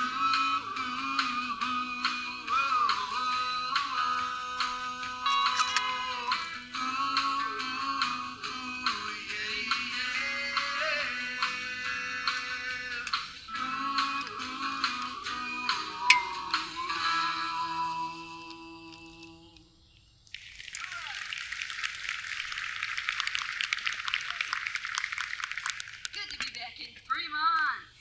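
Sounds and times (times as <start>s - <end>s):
audience clapping: 20.4s - 26.6s.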